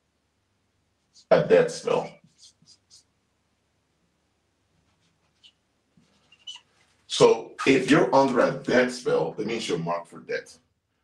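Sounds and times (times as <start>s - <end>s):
marker writing on whiteboard: 1.0s - 3.2s, 4.7s - 7.0s.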